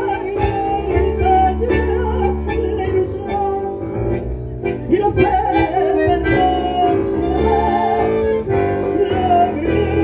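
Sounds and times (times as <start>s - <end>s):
woman singing: 0.0s - 3.8s, 4.9s - 10.0s
electric keyboard: 0.0s - 10.0s.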